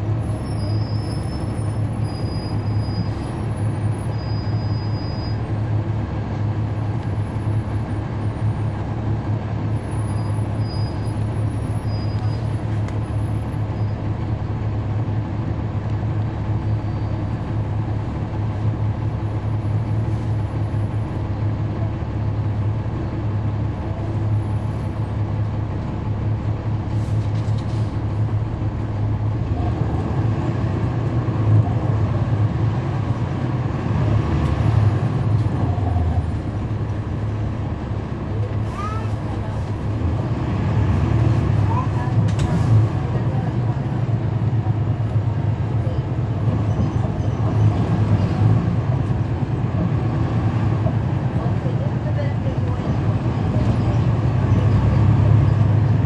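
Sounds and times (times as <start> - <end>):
bus diesel engine droning: 0.0 - 56.0.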